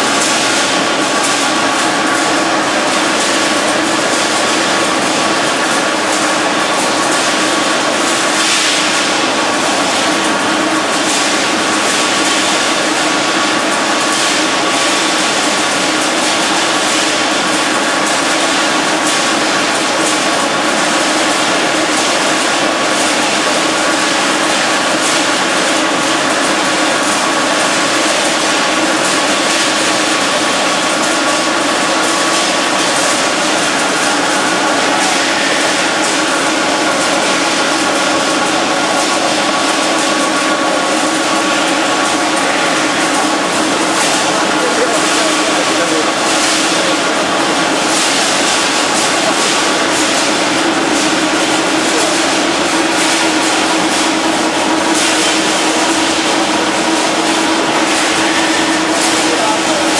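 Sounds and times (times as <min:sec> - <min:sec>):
factory machinery din: 0:00.0 - 0:59.9.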